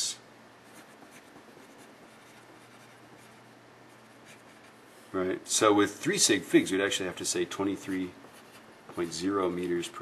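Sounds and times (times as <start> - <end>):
pencil scratching on paper: 0.6 - 4.8, 7.8 - 9.9.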